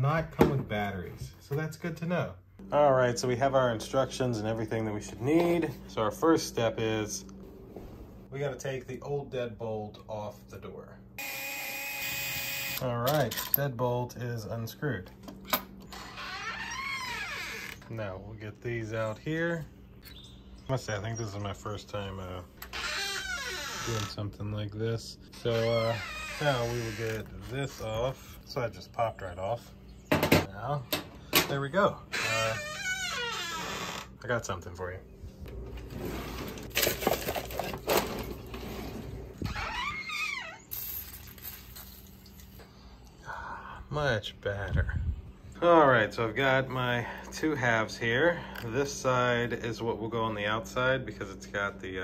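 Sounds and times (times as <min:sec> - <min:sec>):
door creaking open: 0:15.8 - 0:17.9, 0:22.6 - 0:24.2, 0:25.3 - 0:27.6, 0:32.1 - 0:34.2, 0:37.9 - 0:40.9
items rattling in drawer: 0:36.5 - 0:38.6.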